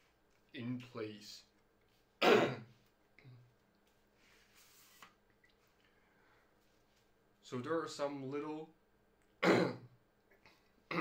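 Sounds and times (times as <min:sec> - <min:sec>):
man coughing: 0:02.2 - 0:02.7.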